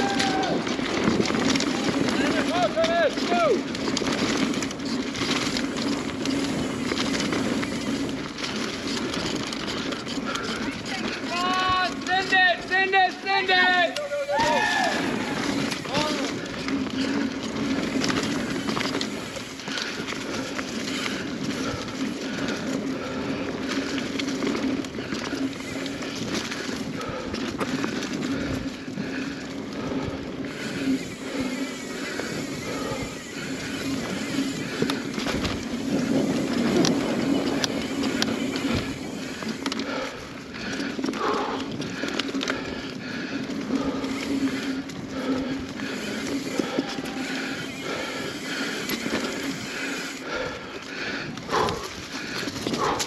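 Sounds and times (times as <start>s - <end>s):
bike chain and frame rattling: 0.0s - 53.0s
bike tyres rolling on dirt: 0.0s - 53.0s
bike knocking: 13.8s - 29.2s.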